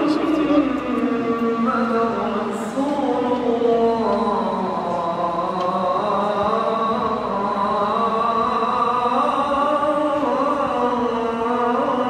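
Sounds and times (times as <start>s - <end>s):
man chanting into microphone: 0.0s - 12.0s.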